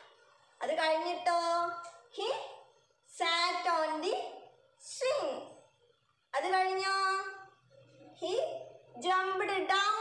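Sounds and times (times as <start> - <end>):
woman speaking: 0.6 - 5.7, 6.4 - 10.0.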